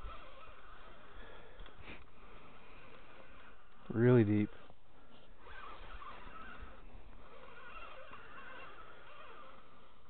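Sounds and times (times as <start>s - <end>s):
fishing reel cranking: 0.0s - 1.6s, 5.4s - 10.0s
faint wavering reel whine: 0.0s - 10.0s.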